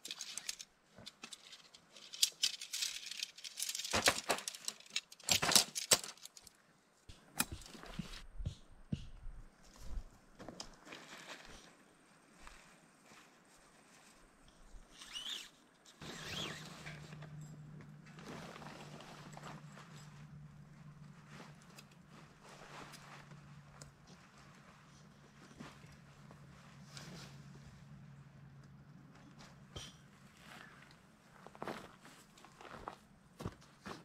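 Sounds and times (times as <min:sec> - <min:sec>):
footsteps: 0:07.1 - 0:11.7
tent fabric rustling: 0:09.6 - 0:17.2, 0:18.0 - 0:27.8.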